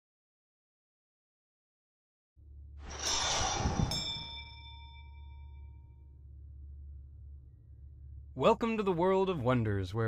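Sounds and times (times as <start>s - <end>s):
low steady hum: 3.6s - 10.0s
small bell ringing: 3.9s - 5.9s.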